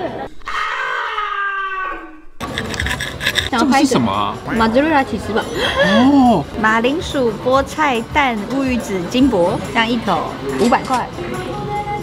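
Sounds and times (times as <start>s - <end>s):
voice-like cry gliding down: 0.4s - 2.4s.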